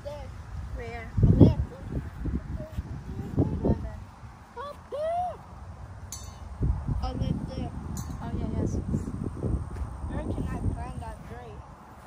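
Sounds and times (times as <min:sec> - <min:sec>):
microphone handling rumble: 0:00.8 - 0:04.2.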